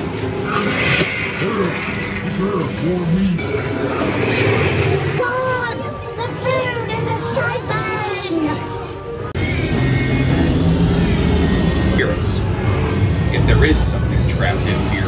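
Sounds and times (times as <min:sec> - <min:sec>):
eerie music: 0:00.0 - 0:15.0.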